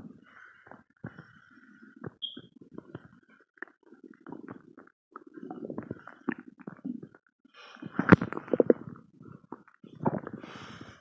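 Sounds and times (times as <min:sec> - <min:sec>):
belly gurgling and rumbling: 0:00.9 - 0:11.0.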